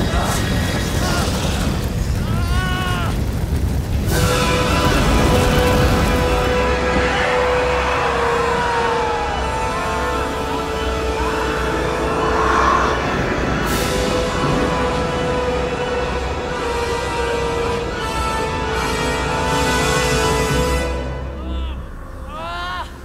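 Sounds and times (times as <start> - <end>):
deep constant rumble: 0.0 - 18.2
ominous orchestral music: 4.1 - 23.0.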